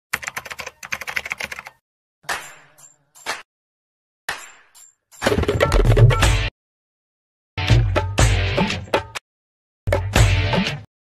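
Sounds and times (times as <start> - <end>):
keyboard typing clicks: 0.2 - 1.8.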